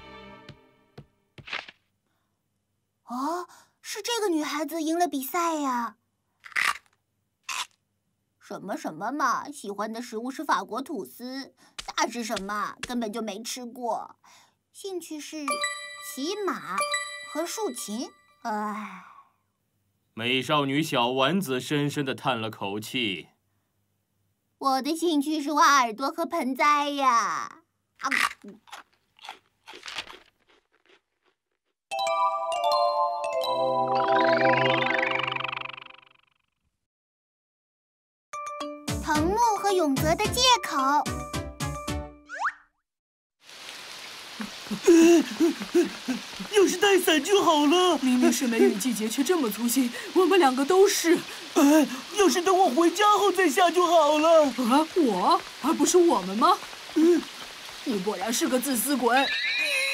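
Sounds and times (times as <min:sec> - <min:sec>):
rice cracker crunching: 0:06.4 - 0:07.8, 0:28.0 - 0:31.8
person speaking: 0:11.8 - 0:13.5, 0:44.4 - 0:57.3
girl's breathy exclamation: 0:18.5 - 0:19.3.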